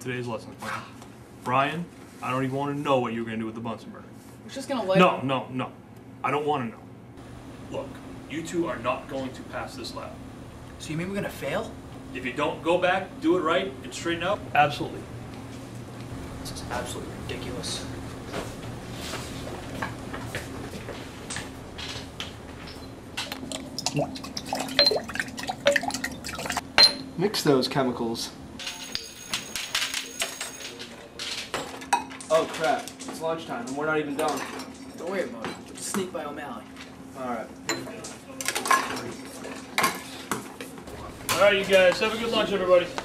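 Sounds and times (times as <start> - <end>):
low room hum: 0.0 - 43.0
liquid dripping: 23.2 - 26.6
glassware clinking: 23.5 - 27.1, 28.6 - 30.9.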